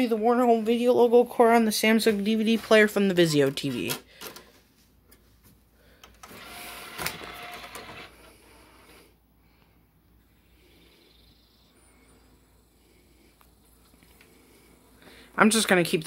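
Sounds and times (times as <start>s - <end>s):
faint steady hum: 0.0s - 16.0s
disc tray motor whirring: 6.2s - 8.9s.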